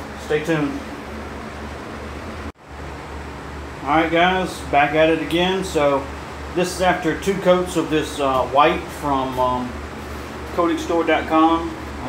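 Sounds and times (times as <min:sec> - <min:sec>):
ventilation hiss with low hum: 0:00.0 - 0:12.0
man speaking: 0:00.2 - 0:00.8, 0:03.8 - 0:09.8, 0:10.5 - 0:11.8.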